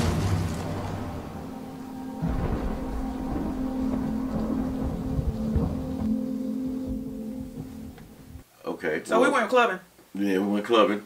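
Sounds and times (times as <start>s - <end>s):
dark low drone score: 0.0s - 8.4s
uneven low rumble: 0.0s - 8.4s.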